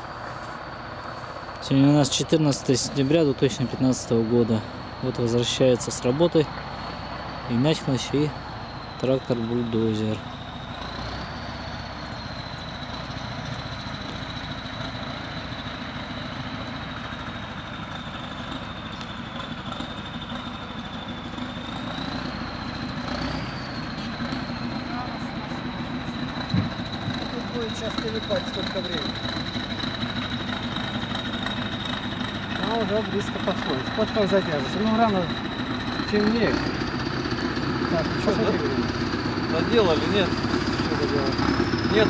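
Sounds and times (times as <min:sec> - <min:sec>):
distant bulldozer engine rumble: 0:00.0 - 0:42.0.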